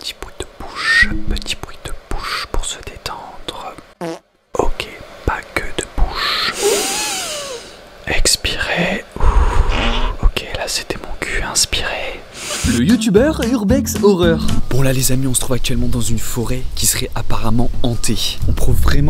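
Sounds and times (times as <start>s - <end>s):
person whispering: 0.0s - 3.9s, 4.6s - 6.9s, 8.1s - 13.0s.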